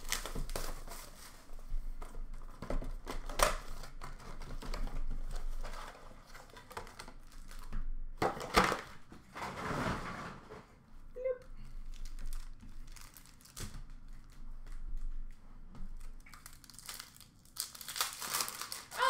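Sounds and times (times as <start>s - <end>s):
rustling cardboard and wrappers: 0.0s - 10.1s, 11.6s - 19.0s.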